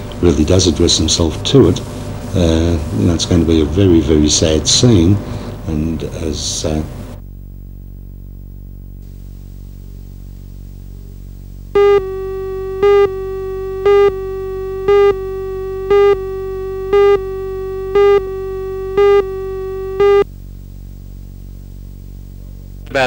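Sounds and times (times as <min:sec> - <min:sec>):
low steady hum: 0:00.0 - 0:23.0
steady electronic tone: 0:11.7 - 0:20.3
countdown beeps: 0:11.8 - 0:20.2.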